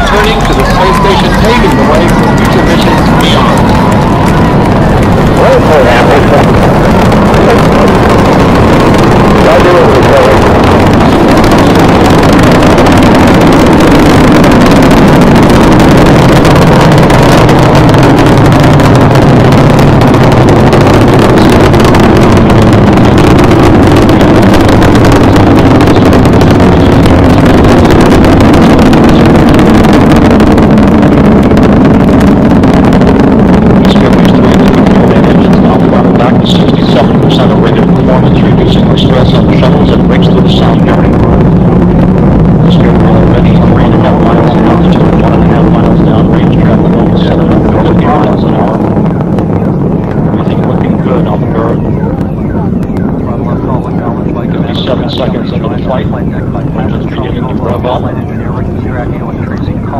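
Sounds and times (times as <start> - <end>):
rocket engines rumbling and crackling: 0.0 - 59.9.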